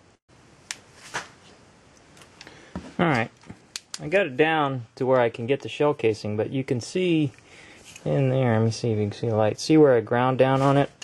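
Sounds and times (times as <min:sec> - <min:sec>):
faint room tone: 0:00.0 - 0:11.0.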